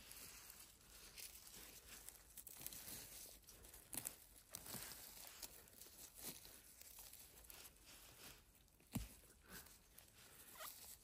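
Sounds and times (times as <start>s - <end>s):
grass and moss rustling: 0.0s - 11.0s.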